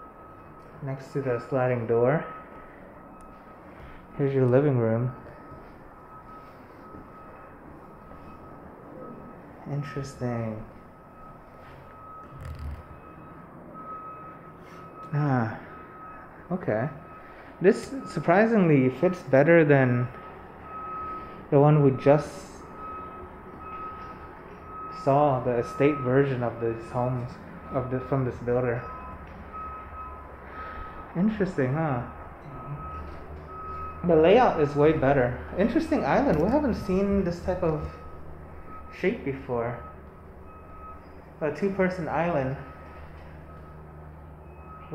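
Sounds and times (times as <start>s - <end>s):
faint high steady tone: 0.0s - 14.0s
reversing alarm beeping: 0.0s - 44.9s.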